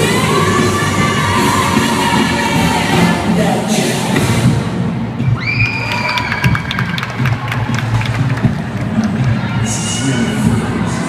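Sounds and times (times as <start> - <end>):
crowd cheering and shouting: 0.0 - 4.4, 5.1 - 11.0
loud dance music: 0.0 - 11.0.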